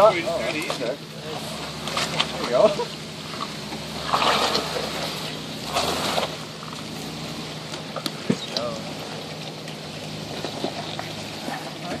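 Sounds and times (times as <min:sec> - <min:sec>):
engine running at low revs: 0:00.0 - 0:12.0.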